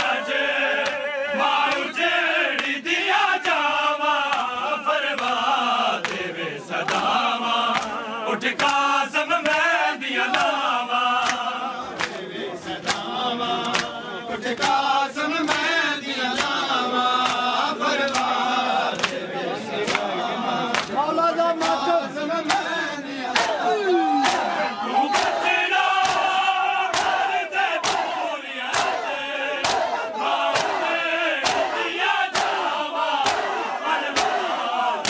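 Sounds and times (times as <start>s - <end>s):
hands slapping chests: 0.0s - 1.0s, 1.6s - 2.8s, 3.4s - 15.7s, 16.3s - 20.1s, 20.7s - 21.0s, 21.6s - 29.0s, 29.6s - 34.6s
men chanting a lament: 0.0s - 35.0s.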